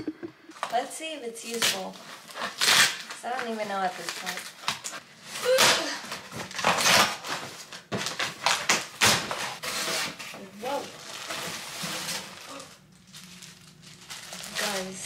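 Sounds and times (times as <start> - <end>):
plastic wrapping rustling: 0.5 - 15.0
packing tape ripped off box: 1.4 - 15.0.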